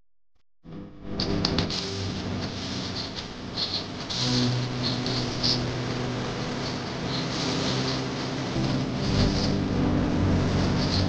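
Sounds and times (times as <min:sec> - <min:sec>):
instrumental music sustained low notes: 0:01.0 - 0:11.0
deep bass: 0:04.2 - 0:11.0.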